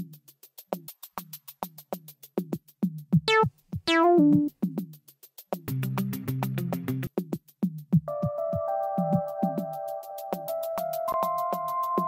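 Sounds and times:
acid synth notes: 3.3 - 4.5
drum-machine loop: 3.3 - 4.5.

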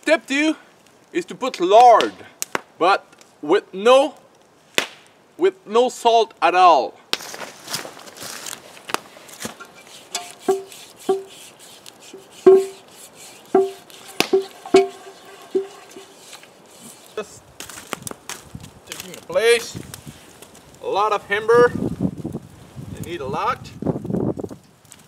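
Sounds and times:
cast iron pot clinking: 9.5 - 11.4, 12.1 - 12.9, 13.5 - 16.5
cloth wiping pot: 9.6 - 17.2.

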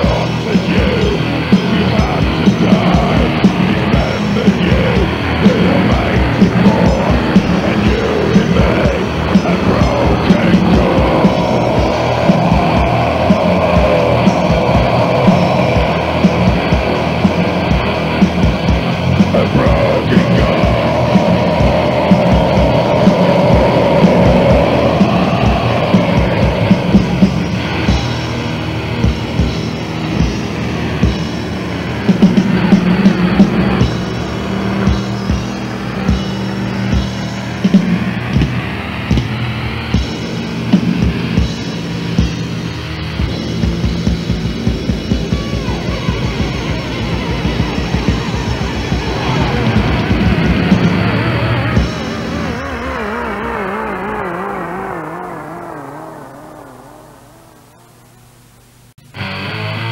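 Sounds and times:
heavily distorted guitar: 0.0 - 59.9.

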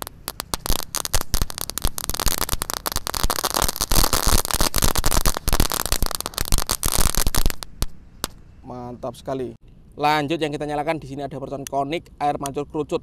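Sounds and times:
firecrackers snapping and popping: 0.0 - 8.4.

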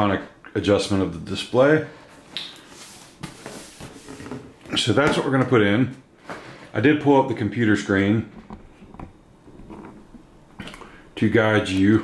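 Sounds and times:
faint rubbing hiss: 1.8 - 4.7.

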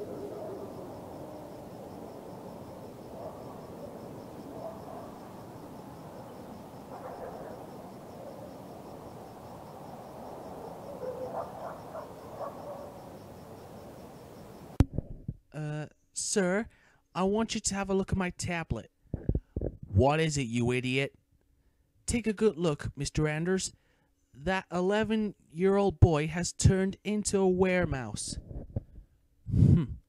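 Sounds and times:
cricket chirping: 0.0 - 14.8
frog croaks: 0.0 - 14.8
low hiss: 0.0 - 14.8.

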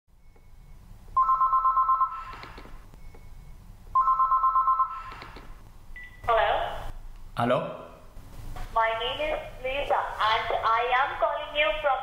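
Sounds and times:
electronic telephone ringing: 1.2 - 2.5, 4.0 - 5.4.

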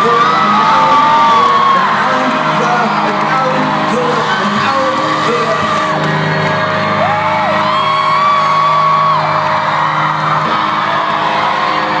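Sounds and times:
crowd whooping and cheering: 0.0 - 12.0.

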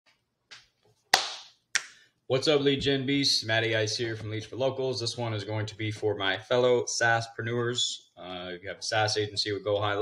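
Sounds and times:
hand claps: 0.5 - 2.0.

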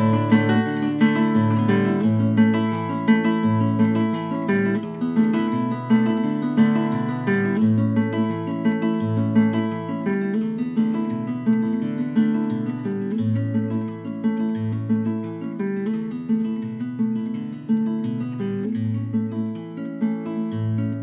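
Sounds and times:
classical guitar playing solo: 0.0 - 21.0.

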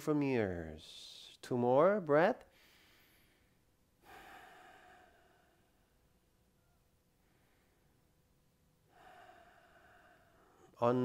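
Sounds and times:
person breathing faintly: 2.5 - 11.0.

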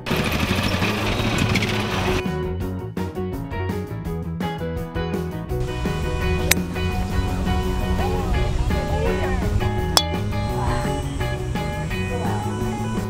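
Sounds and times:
background guitar music: 2.2 - 13.0.

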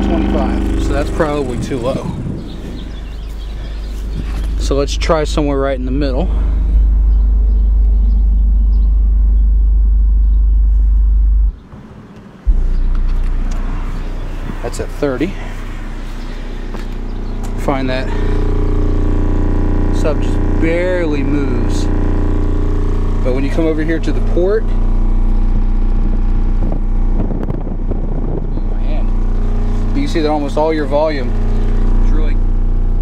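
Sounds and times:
subwoofer low test tone hum: 0.0 - 33.0.

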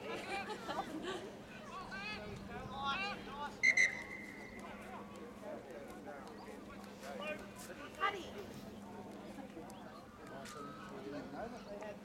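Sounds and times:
referee's whistle blast: 3.6 - 4.2.

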